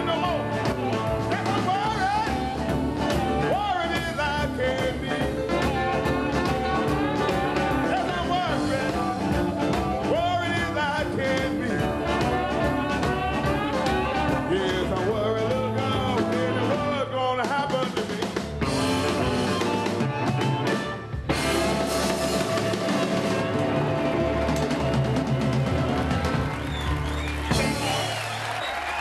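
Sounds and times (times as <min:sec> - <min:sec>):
blues band playing live: 0:00.0 - 0:29.0.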